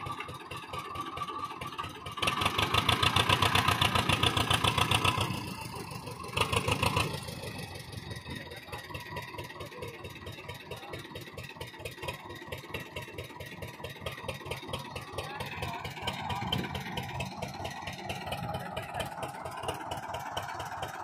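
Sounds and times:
tractor diesel engine revving: 0.0 - 21.0.

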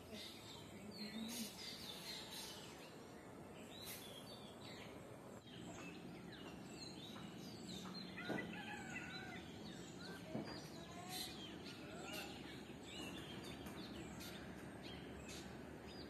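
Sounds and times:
birds chirping and calling: 0.0 - 16.0
steady low background noise: 0.0 - 16.0.

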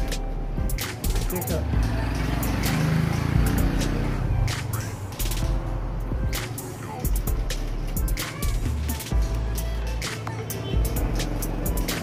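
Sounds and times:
vehicle engine running: 1.5 - 6.4.

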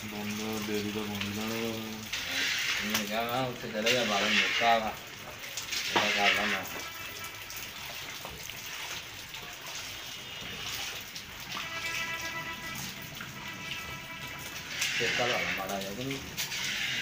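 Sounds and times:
dough frying in hot oil: 0.0 - 17.0.

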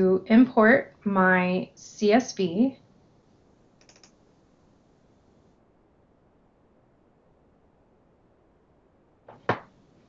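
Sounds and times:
computer mouse double-clicking: 3.8 - 4.2.

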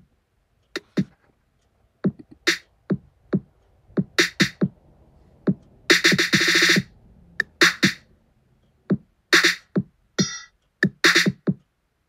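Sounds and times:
soft trap drum beat: 0.8 - 1.2, 2.0 - 8.2, 8.8 - 11.7
fast snare roll: 2.3 - 4.8, 5.5 - 8.1, 9.4 - 9.7, 10.8 - 11.4.

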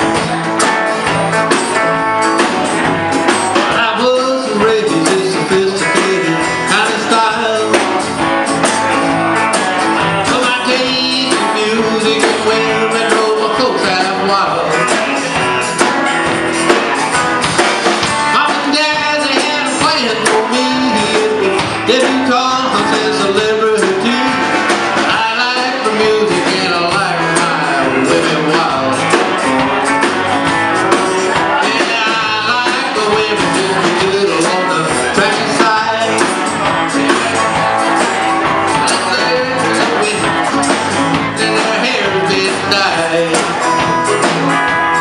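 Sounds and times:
country-rock band playing: 0.0 - 45.0
person singing: 3.2 - 45.0.

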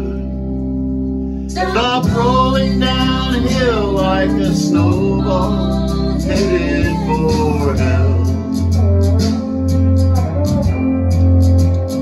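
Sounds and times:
country backing track: 0.0 - 12.0.

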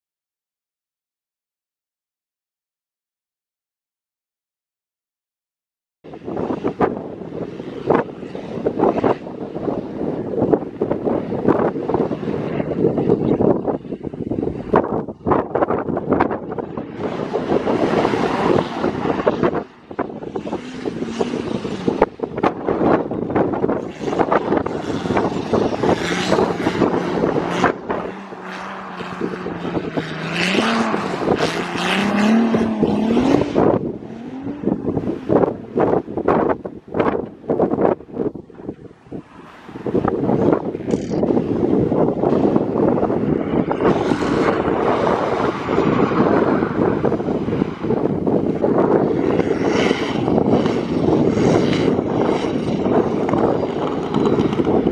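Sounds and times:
car engine revving: 16.2 - 36.4, 42.2 - 54.9.

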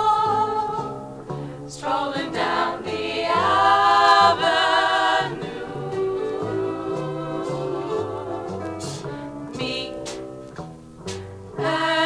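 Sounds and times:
vocal group singing with vibrato: 0.0 - 10.2, 11.6 - 12.0
bass line: 0.0 - 12.0
jazz band playing: 4.2 - 11.8.

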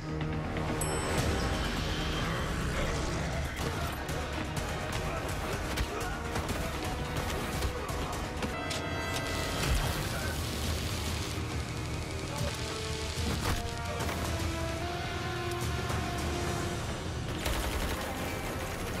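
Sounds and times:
dramatic music score: 0.0 - 19.0.

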